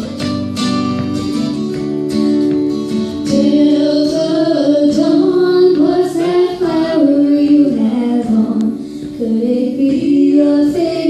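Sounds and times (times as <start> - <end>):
guitar accompaniment: 0.0 - 11.0
woman singing country song: 3.1 - 11.0.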